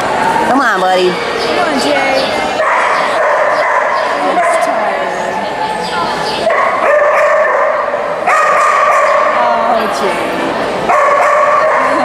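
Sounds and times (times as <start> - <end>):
dogs barking and yipping: 2.2 - 9.5, 10.8 - 12.0.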